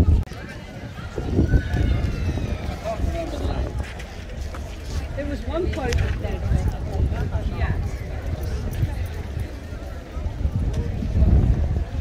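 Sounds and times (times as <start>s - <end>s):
low microphone rumble: 0.0s - 12.0s
people talking in a crowd: 0.0s - 12.0s.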